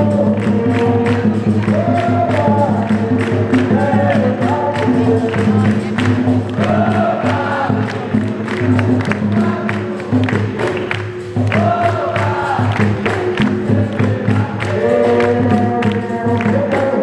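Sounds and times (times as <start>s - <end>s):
group singing together: 0.0s - 17.0s
people clapping in rhythm: 0.0s - 17.0s
percussion ensemble: 0.0s - 17.0s.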